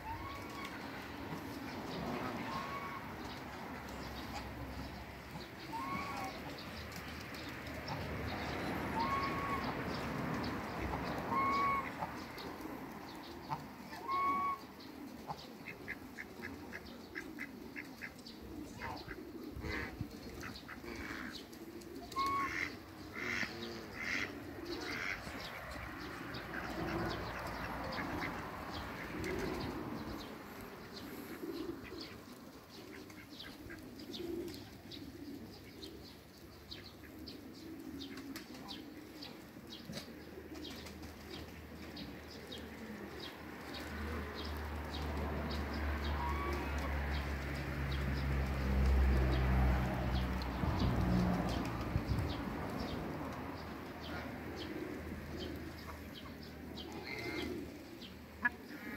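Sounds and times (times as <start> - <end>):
goose honk: 9.0 - 9.7, 11.3 - 12.1, 22.2 - 24.3.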